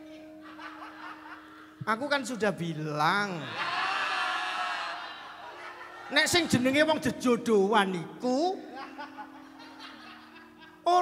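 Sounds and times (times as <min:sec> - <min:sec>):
audience laughter: 0:00.3 - 0:01.8, 0:03.4 - 0:06.5, 0:08.7 - 0:10.8
man's voice: 0:01.8 - 0:03.6, 0:06.1 - 0:08.8.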